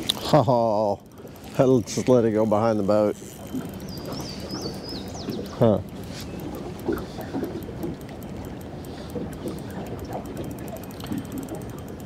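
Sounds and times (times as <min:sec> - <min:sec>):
water noise: 0:00.0 - 0:12.0
wind: 0:00.0 - 0:12.0.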